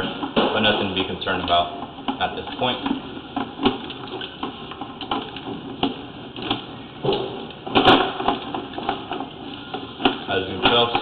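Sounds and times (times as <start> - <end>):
cable knocking and rattling: 0.0 - 11.0
loud clatter: 2.8 - 9.4.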